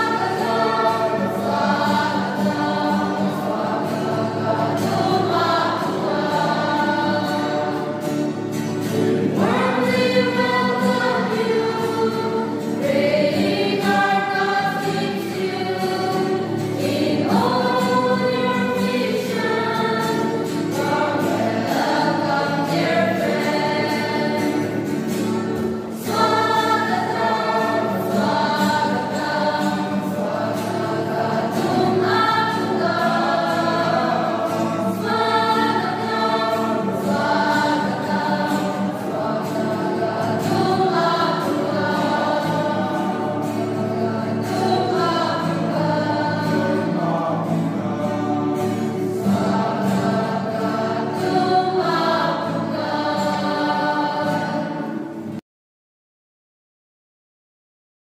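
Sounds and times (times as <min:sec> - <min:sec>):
acoustic guitar: 0:00.0 - 0:55.4
mixed choir singing a hymn: 0:00.0 - 0:55.4.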